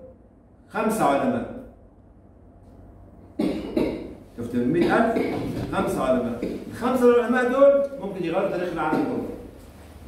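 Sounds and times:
person coughing: 0:03.4 - 0:04.2, 0:04.8 - 0:06.8, 0:08.8 - 0:09.4.

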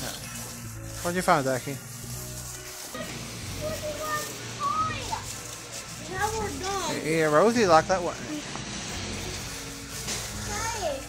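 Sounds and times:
people and children talking: 0:02.8 - 0:08.5, 0:10.4 - 0:11.0.

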